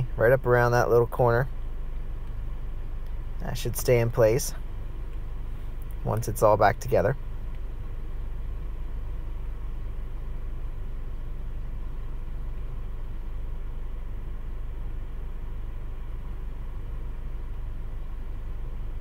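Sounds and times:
low mechanical hum and rumble: 0.0s - 19.0s.

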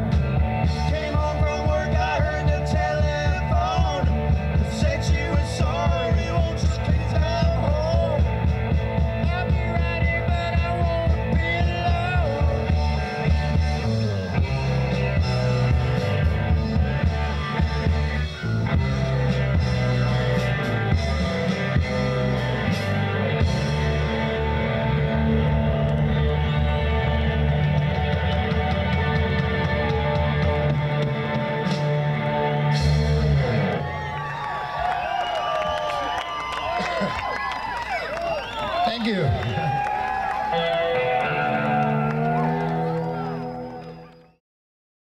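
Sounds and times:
electric bass: 0.0s - 35.2s, 40.4s - 44.4s
drum kit: 0.0s - 35.7s
electric guitars: 0.0s - 44.3s.

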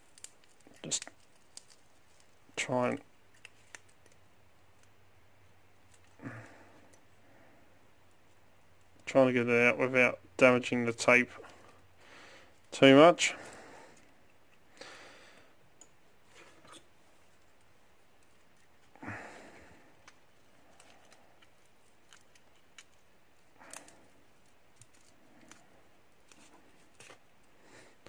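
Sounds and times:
tape crinkling and rustling: 0.0s - 7.0s, 16.2s - 28.0s.

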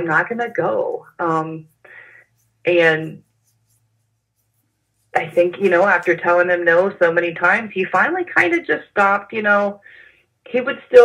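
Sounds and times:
woman speaking: 0.0s - 2.1s, 2.7s - 3.2s, 5.2s - 11.0s
low steady hum: 0.0s - 11.0s.

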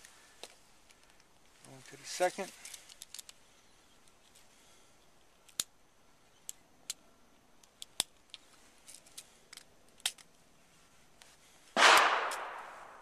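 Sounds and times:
small sharp metallic clicks: 2.6s - 4.5s, 5.2s - 5.8s, 6.4s - 7.0s, 7.6s - 10.4s.

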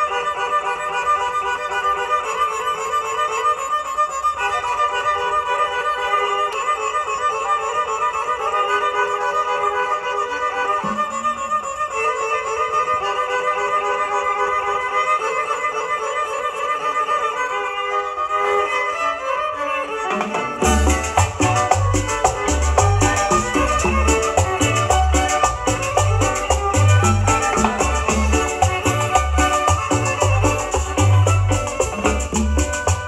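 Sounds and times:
violin melody: 0.0s - 33.0s
bass and percussion beat: 20.6s - 33.0s.

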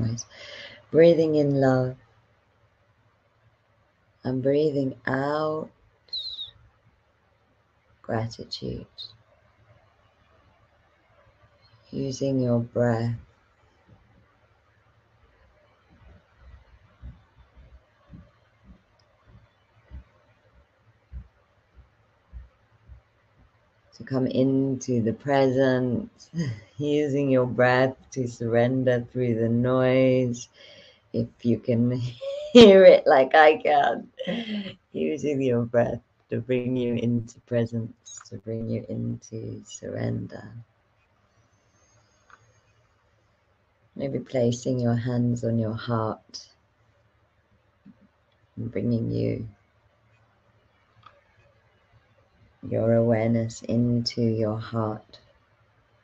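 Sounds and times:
low steady hum: 0.0s - 2.2s, 3.3s - 40.7s, 41.4s - 47.3s, 47.9s - 56.0s
quiet hiss: 0.0s - 56.0s.

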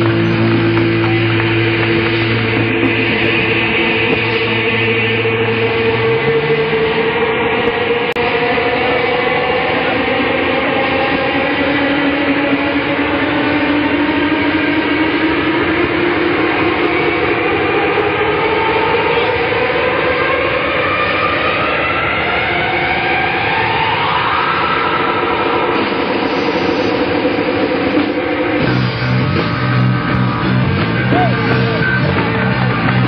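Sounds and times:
live rock band playing: 0.0s - 4.6s, 26.3s - 33.0s
distorted electric guitar sliding notes: 0.0s - 33.0s.

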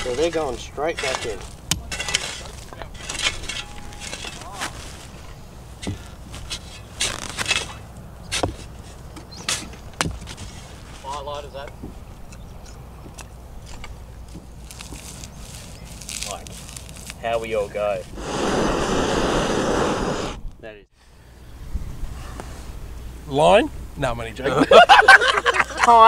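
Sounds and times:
shovel digging sandy soil: 0.0s - 11.3s.

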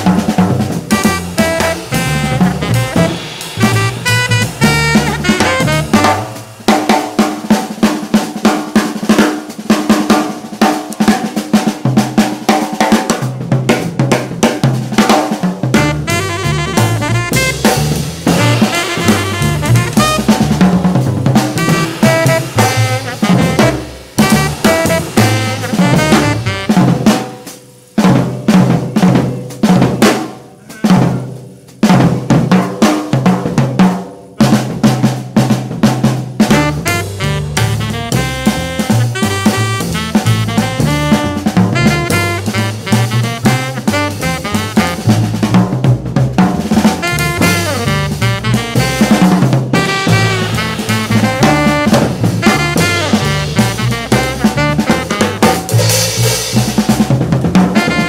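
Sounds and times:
jazz drum solo: 0.0s - 58.0s.

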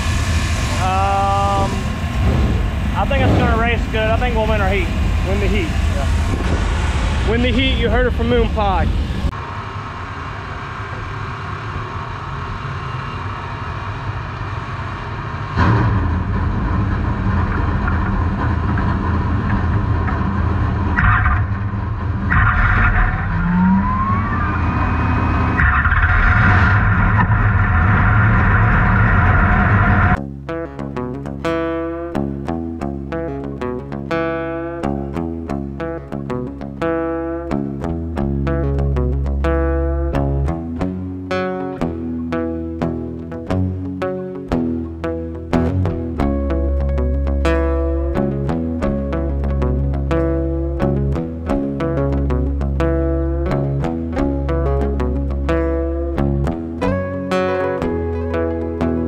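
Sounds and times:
race car engine running: 0.0s - 30.2s
music with plucked guitar: 30.2s - 59.0s.

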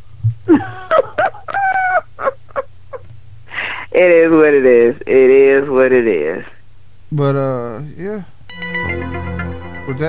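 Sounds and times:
person laughing: 0.5s - 3.1s.

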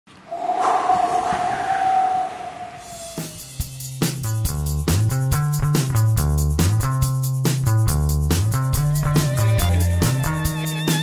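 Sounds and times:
rushing noise: 0.2s - 3.8s.

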